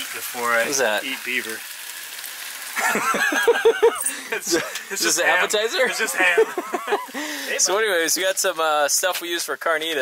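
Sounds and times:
pork sizzling in a frying pan: 0:00.0 - 0:10.0
man laughing heartily: 0:02.8 - 0:04.8, 0:06.0 - 0:07.5.

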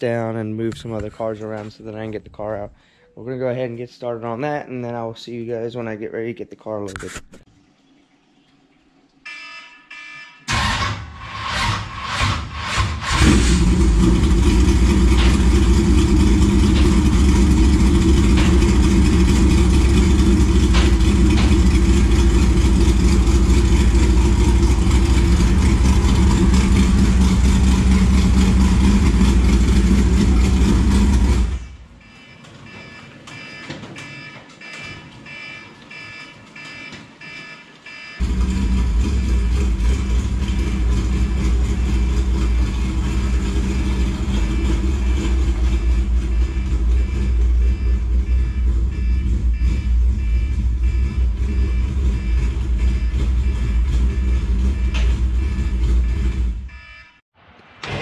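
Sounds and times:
race car engine idling: 0:13.1 - 0:31.9, 0:38.2 - 0:56.7.

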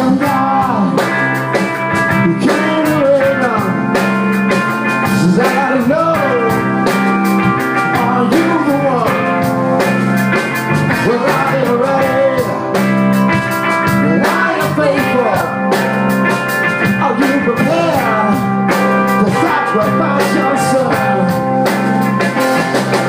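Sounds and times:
person singing: 0:00.0 - 0:01.3, 0:02.0 - 0:04.0, 0:04.9 - 0:09.5, 0:10.8 - 0:15.8, 0:16.8 - 0:21.6
bass: 0:00.0 - 0:23.0
drum kit beat: 0:00.0 - 0:23.0
electric guitar: 0:00.0 - 0:23.0.

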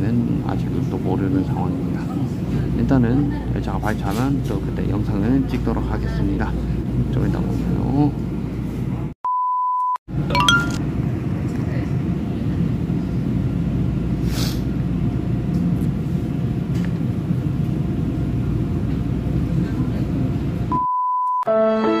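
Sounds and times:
short steady beep: 0:09.3 - 0:10.8, 0:20.7 - 0:21.5.

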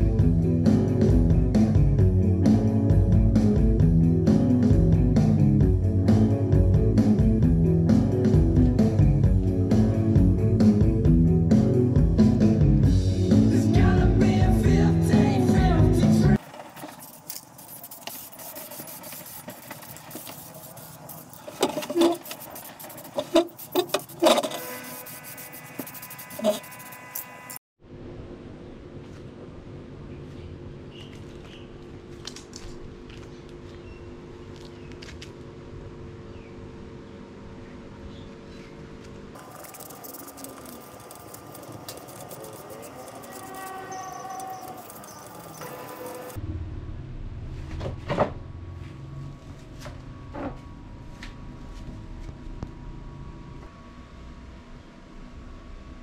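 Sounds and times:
music with singing: 0:04.3 - 0:16.4
sandpaper rubbing on metal: 0:16.4 - 0:27.6, 0:39.4 - 0:46.4
knife blade scratching metal: 0:16.8 - 0:27.6, 0:39.4 - 0:46.4.

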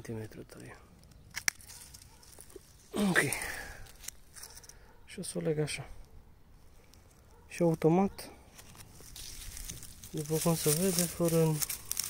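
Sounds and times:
pruning shears snipping: 0:01.3 - 0:02.6, 0:08.5 - 0:12.0.

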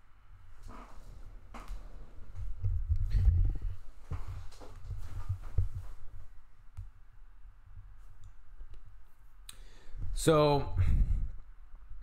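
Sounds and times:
microphone handling bumps: 0:00.6 - 0:06.4.

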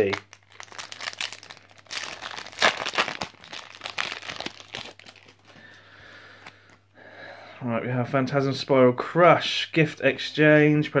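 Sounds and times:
foil wrapper crinkling: 0:00.0 - 0:05.7.

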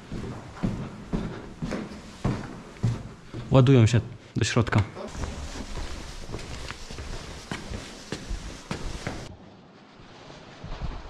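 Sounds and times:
footsteps on stairs: 0:00.0 - 0:04.2, 0:04.8 - 0:09.3.

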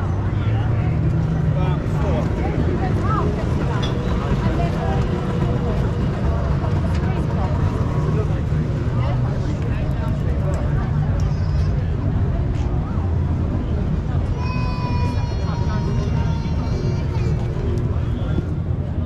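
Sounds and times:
voices chattering: 0:00.0 - 0:19.0
motor scooter engines running: 0:00.1 - 0:14.3.

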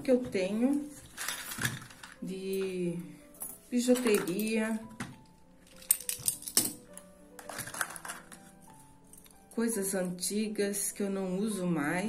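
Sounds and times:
soft background music: 0:00.0 - 0:12.0
metal jewelry clicking and clinking: 0:01.0 - 0:02.6, 0:03.2 - 0:09.5.

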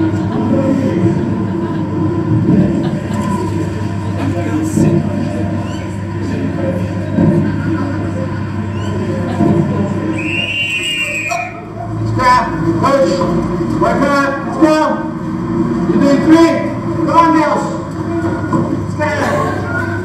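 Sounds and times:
murmur of activity: 0:00.0 - 0:20.0
coach's whistle blast: 0:10.2 - 0:11.6.

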